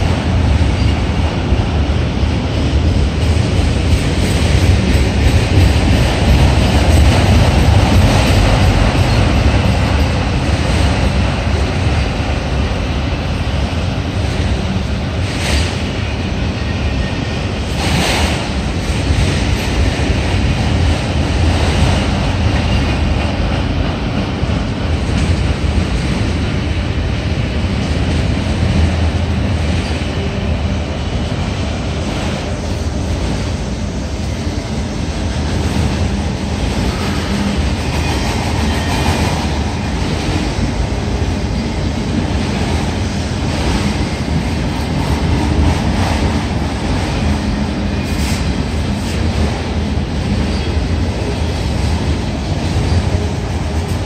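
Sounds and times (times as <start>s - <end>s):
freight train wheels rumbling: 0.0s - 54.0s.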